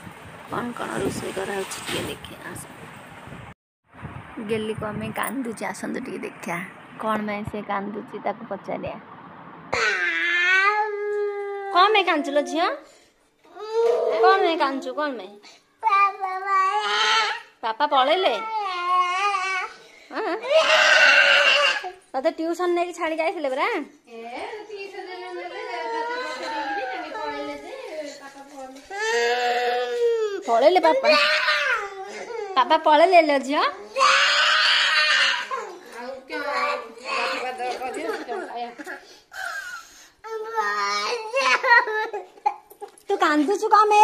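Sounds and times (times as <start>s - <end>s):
toddler screaming: 9.7s - 11.8s, 15.9s - 17.5s, 20.4s - 22.0s, 31.0s - 32.2s, 33.9s - 35.8s
young child whining cry: 9.8s - 12.5s, 13.5s - 14.5s, 16.2s - 17.5s, 20.4s - 22.0s, 25.6s - 27.5s, 28.9s - 32.6s, 33.9s - 35.8s.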